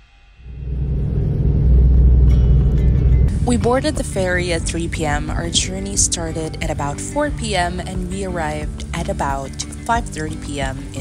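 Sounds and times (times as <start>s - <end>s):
ferry engine rumble: 0.4s - 11.0s.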